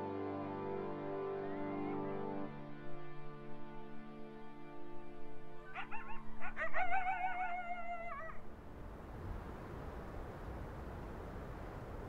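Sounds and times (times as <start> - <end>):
background music of sustained chords: 0.0 - 12.0
dog yipping: 5.8 - 8.4
dog howling: 5.8 - 8.5.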